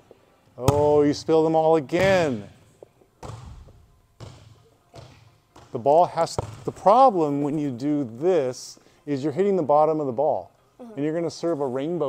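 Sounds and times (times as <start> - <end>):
volleyball bouncing on gym floor: 0.6 - 1.2, 1.9 - 2.6, 3.2 - 6.9.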